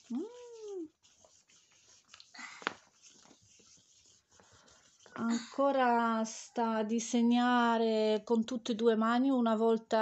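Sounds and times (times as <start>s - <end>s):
pen scratching on drawing mat: 0.0s - 6.4s.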